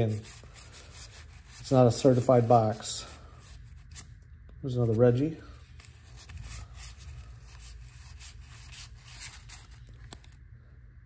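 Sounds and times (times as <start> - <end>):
cards being flipped through: 5.7 - 10.4.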